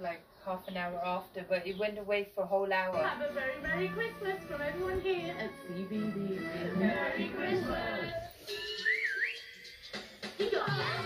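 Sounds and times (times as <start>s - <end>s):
gliding whistle sound effect: 8.4s - 9.8s.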